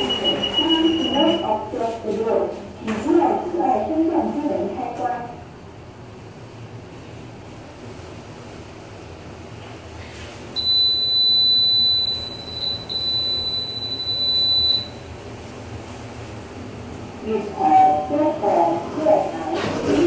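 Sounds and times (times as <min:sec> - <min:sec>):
lift high steady beep: 0:00.0 - 0:01.6, 0:10.6 - 0:15.0.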